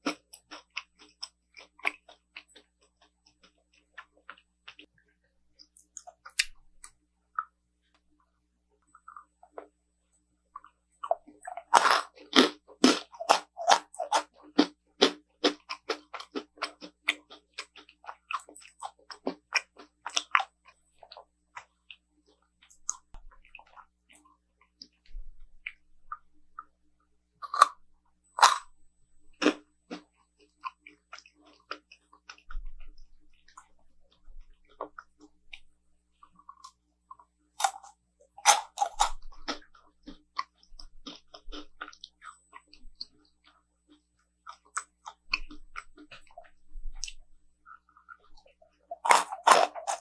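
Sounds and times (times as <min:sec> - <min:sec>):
crunchy chewing: 0:00.0 - 0:04.9, 0:10.5 - 0:26.7, 0:27.4 - 0:27.8, 0:28.4 - 0:50.0.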